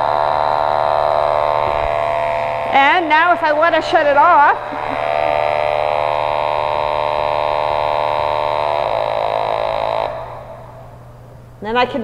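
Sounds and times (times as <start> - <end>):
buzzing electronic tone: 0.0 - 11.3.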